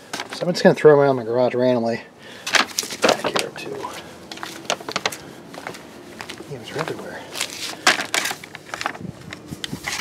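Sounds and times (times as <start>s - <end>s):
bait blocks clicking and rustling: 7.3s - 10.0s.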